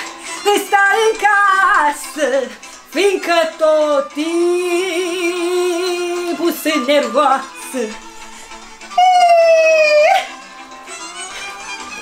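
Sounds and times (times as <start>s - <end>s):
folk backing music: 0.0s - 12.0s.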